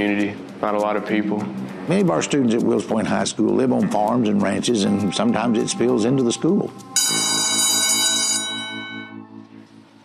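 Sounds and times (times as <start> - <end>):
electric school bell ringing: 7.0 - 9.3.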